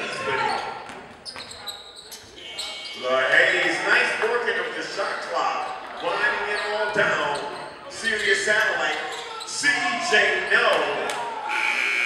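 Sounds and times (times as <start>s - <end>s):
players and spectators shouting: 2.4s - 11.9s.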